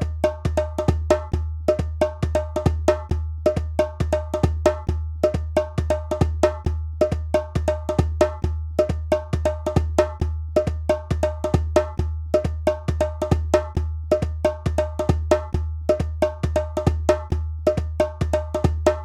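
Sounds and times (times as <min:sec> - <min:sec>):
hand drum strikes: 0:00.0 - 0:19.0.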